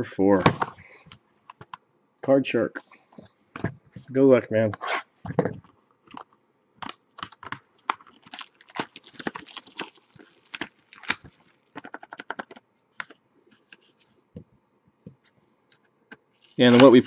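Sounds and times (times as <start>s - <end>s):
card pack packaging crinkling: 6.8s - 13.1s.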